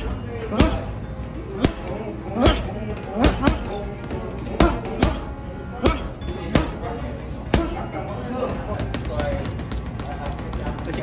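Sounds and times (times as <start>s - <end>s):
background music: 0.0s - 11.0s
gloves punching heavy bag: 1.6s - 3.8s, 4.6s - 6.8s.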